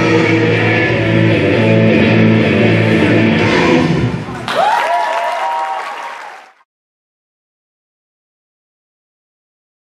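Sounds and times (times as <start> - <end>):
rock dance music: 0.0 - 4.2
audience applauding: 4.3 - 6.7
whoops and shouts: 4.4 - 6.5.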